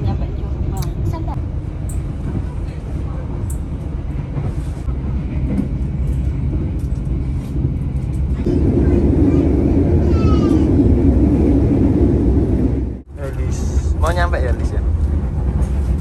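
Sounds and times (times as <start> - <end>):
train rumbling on rails: 0.0 - 16.0.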